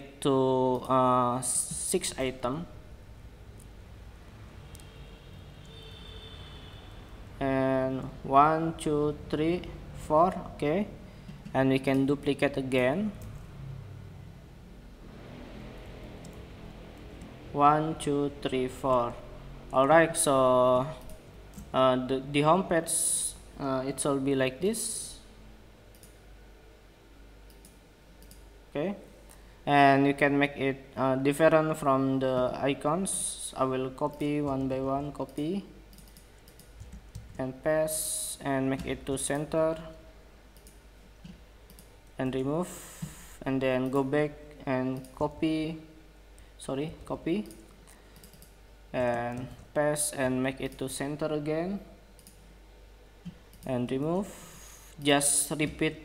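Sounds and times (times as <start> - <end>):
low room hum: 0.0 - 56.0
computer mouse clicks: 16.2 - 16.4, 25.9 - 26.2, 27.5 - 28.5, 34.1 - 37.4, 40.5 - 41.9, 43.0 - 44.1, 47.4 - 49.7, 52.2 - 52.4, 53.2 - 53.7.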